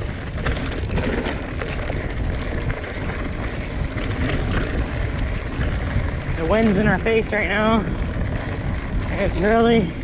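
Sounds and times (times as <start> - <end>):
bike clicks and rattles: 0.0 - 10.0
tyres crunching on dirt: 0.0 - 10.0
wind buffeting microphone: 0.0 - 10.0.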